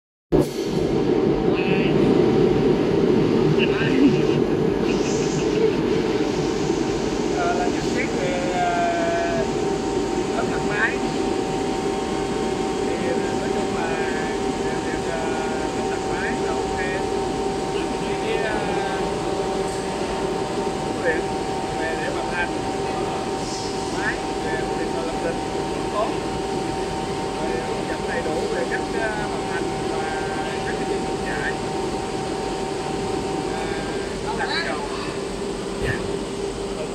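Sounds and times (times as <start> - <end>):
industrial machinery drone: 0.4 - 36.9
man speaking: 1.5 - 2.0, 3.6 - 6.3, 7.3 - 9.5, 10.3 - 11.2, 12.8 - 17.1, 17.7 - 19.4, 20.9 - 26.3, 27.3 - 31.6, 33.5 - 35.2, 35.8 - 36.1
person speaking: 3.6 - 6.3, 33.5 - 35.2.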